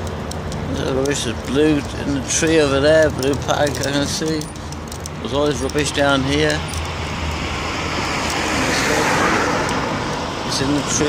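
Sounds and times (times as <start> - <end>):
low rumble of traffic: 0.0 - 11.0
car passing close by: 6.9 - 11.0.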